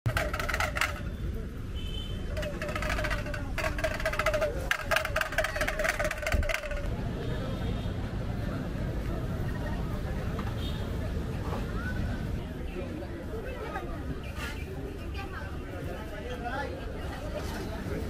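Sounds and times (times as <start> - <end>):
rapid rattling or clicking: 0.0 - 1.2, 2.3 - 6.9
low rumble of traffic: 0.0 - 18.0
people's voices: 0.1 - 18.0.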